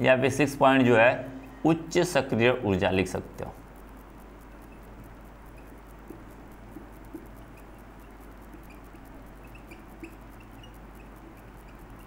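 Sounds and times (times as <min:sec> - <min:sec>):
low steady hum: 0:00.0 - 0:12.0
marker squeaking on whiteboard: 0:04.4 - 0:12.0.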